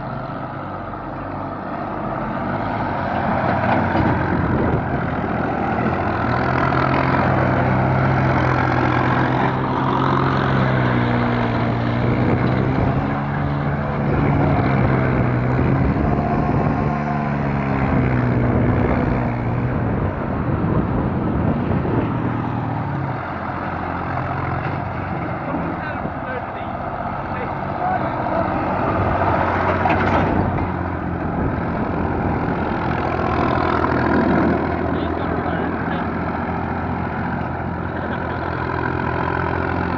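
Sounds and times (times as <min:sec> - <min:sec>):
tractor diesel engine running: 0:00.0 - 0:39.9.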